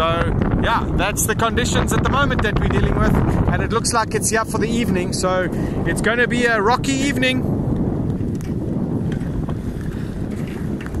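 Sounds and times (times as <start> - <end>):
choppy sea: 0.0 - 11.0
strong wind buffeting microphone: 0.0 - 11.0.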